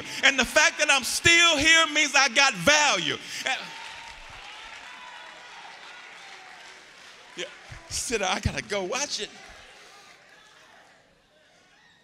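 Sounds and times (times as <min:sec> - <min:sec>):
congregation applauding: 0:00.0 - 0:11.0.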